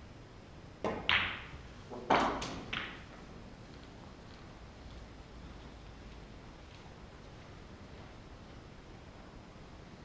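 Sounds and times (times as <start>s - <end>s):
cue tip striking ball: 0.8s - 3.2s
snooker balls clacking: 0.8s - 4.0s.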